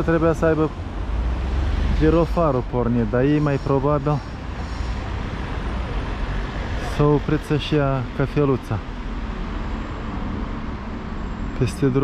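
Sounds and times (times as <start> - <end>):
traffic rumble: 0.0 - 12.0
car driving past: 0.9 - 2.6.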